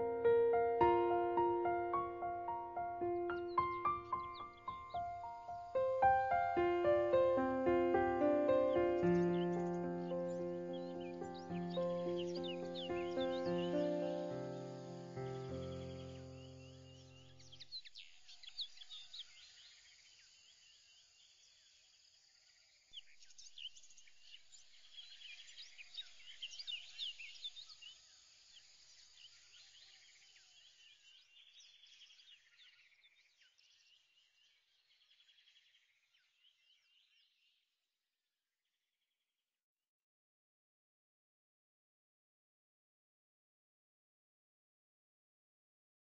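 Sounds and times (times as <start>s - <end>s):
low music notes: 0.0s - 16.2s
birds chirping and trilling: 0.0s - 20.0s, 23.0s - 37.5s.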